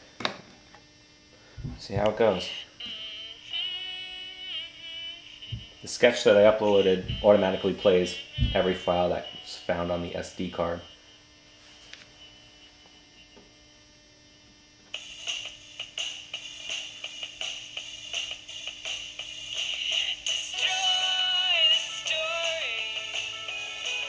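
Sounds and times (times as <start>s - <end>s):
faint steady hum: 0.0s - 24.0s
gliding melody line: 6.7s - 10.2s
music with a regular beat: 15.0s - 24.0s.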